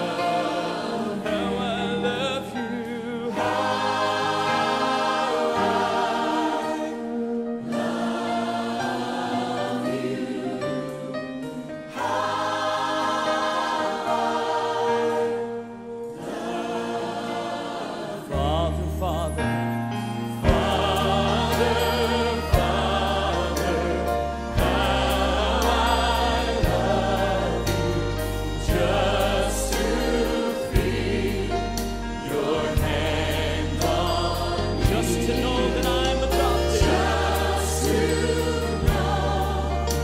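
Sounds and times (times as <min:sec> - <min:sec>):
choir singing: 0:00.0 - 0:40.0.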